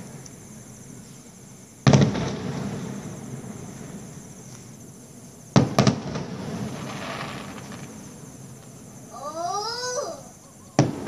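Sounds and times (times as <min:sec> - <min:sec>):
firecrackers bursting: 0:01.8 - 0:04.7, 0:05.5 - 0:09.1, 0:10.8 - 0:11.0.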